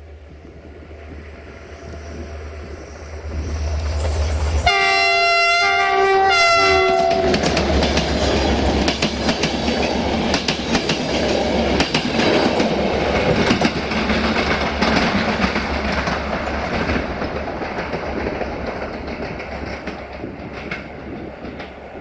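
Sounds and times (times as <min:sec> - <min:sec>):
train coaches rumbling past: 0:00.0 - 0:22.0
locomotive horn blasts: 0:04.6 - 0:07.5
wheels clicking over rail joints: 0:06.8 - 0:22.0.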